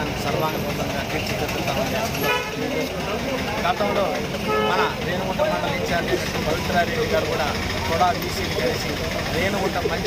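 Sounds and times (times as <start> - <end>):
man talking: 0.0 - 10.0
street traffic: 0.0 - 10.0
vehicle horn toot: 2.2 - 2.6, 4.5 - 5.0.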